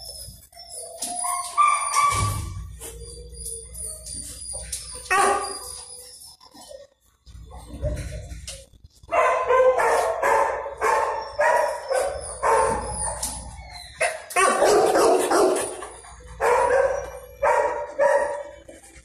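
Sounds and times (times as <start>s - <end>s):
dog barking: 5.1s - 5.6s, 9.1s - 12.9s, 14.0s - 18.6s.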